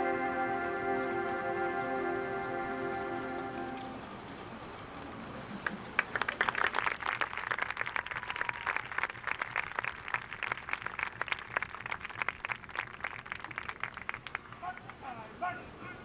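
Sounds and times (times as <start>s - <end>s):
audience applause: 5.6s - 15.0s.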